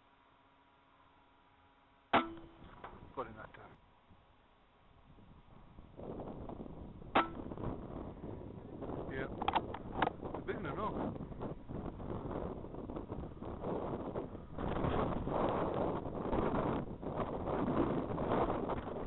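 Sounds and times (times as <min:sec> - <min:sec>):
wind buffeting microphone: 0:05.0 - 0:19.0.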